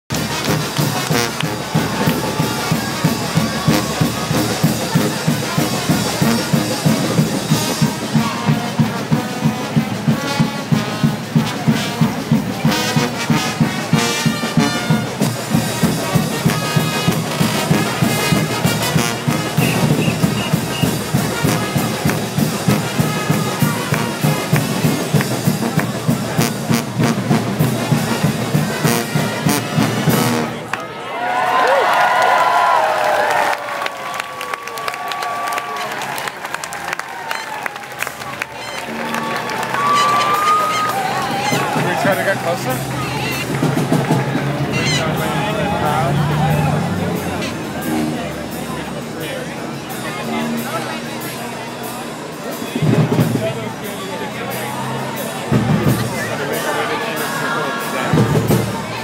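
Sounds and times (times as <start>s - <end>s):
crowd cheering: 0.1s - 9.3s, 11.4s - 59.0s
brass band playing: 0.1s - 30.8s, 34.8s - 59.0s.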